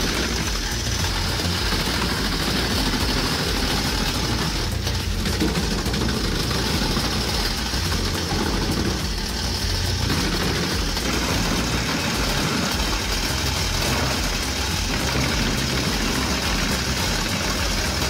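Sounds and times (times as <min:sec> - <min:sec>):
wood chipper chipping logs: 0:00.0 - 0:18.0.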